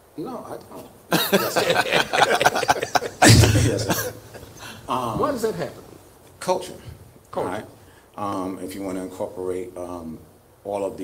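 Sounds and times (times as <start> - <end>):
man coughing: 1.6 - 4.8.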